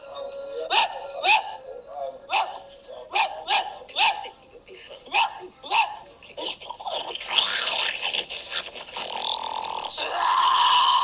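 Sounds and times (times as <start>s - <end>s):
dog barking: 0.7s - 1.6s, 2.3s - 4.3s, 5.1s - 6.1s.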